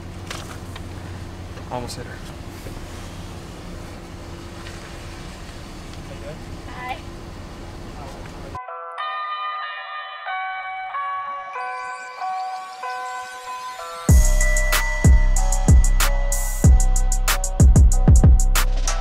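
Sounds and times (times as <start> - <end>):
vehicle idling: 0.0 - 8.6
bell-like music melody: 8.6 - 19.0.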